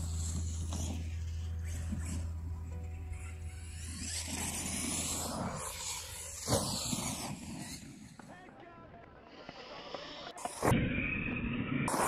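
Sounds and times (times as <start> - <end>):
electric motor whining: 0.0 - 8.2
tyre and chassis noise: 0.0 - 8.6.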